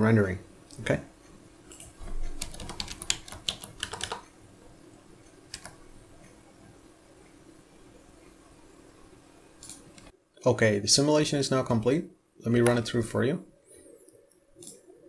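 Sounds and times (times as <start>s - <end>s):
faint steady hum: 0.0s - 15.0s
computer keyboard typing: 2.1s - 4.3s, 5.5s - 5.9s.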